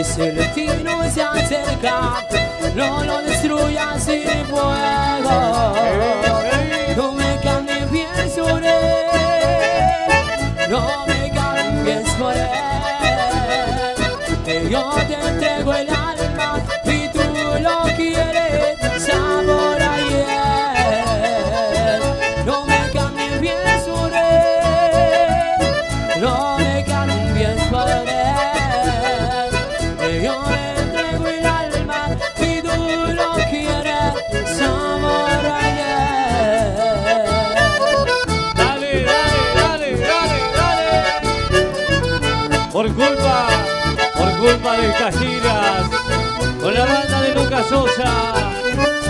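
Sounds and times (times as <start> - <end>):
accordion melody: 0.0 - 49.0
beat and bass: 0.0 - 49.0.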